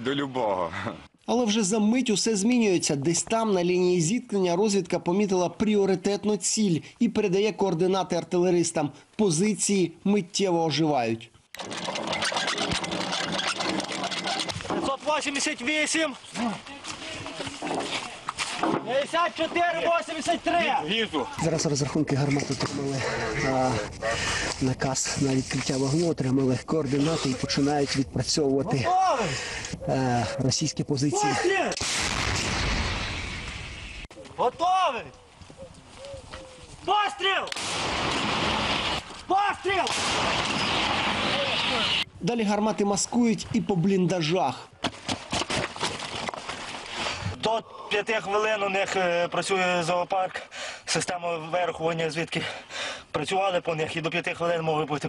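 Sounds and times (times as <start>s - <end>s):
noise and clatter: 11.6s - 15.0s
men calling out: 15.0s - 18.2s, 28.5s - 31.8s, 34.3s - 35.2s
artillery blasts: 31.8s - 34.0s, 37.6s - 39.1s, 39.8s - 42.0s.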